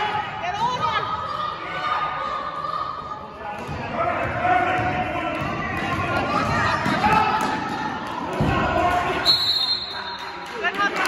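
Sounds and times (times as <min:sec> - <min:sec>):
spectators' voices: 0:00.0 - 0:11.0
referee's whistle: 0:09.2 - 0:10.2.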